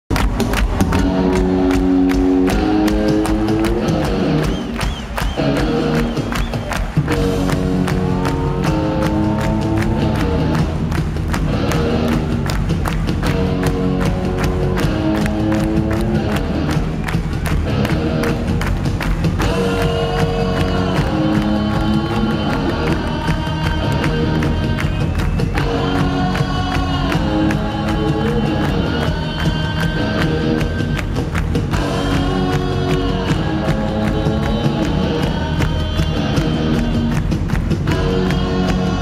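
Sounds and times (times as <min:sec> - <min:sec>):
punk rock band playing: 0:00.1 - 0:39.0
steady drum beat: 0:00.1 - 0:39.0
electric guitar chords: 0:00.2 - 0:39.0.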